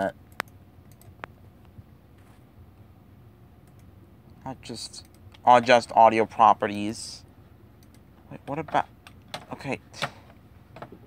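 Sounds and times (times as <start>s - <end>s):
faint low hum: 0.0s - 11.0s
computer mouse clicking: 0.3s - 1.4s, 3.6s - 3.9s, 5.0s - 5.4s, 7.8s - 8.1s.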